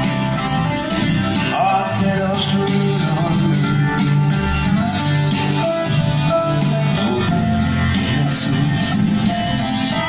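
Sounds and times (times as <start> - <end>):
live band playing country-folk: 0.0 - 10.0.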